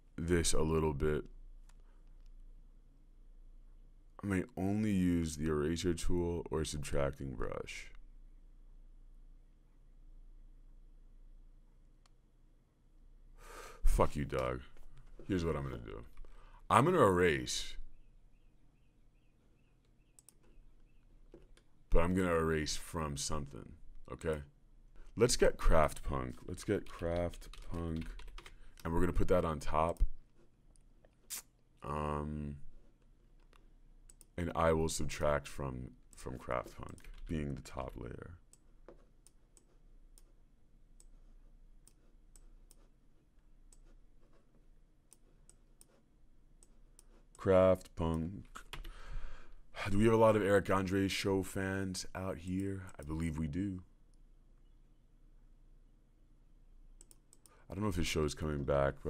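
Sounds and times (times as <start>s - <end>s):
faint computer clicks: 19.8s - 21.7s, 57.0s - 57.6s.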